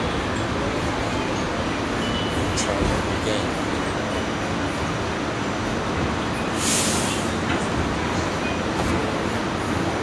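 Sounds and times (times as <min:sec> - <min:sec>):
subway train rumbling: 0:00.0 - 0:10.0.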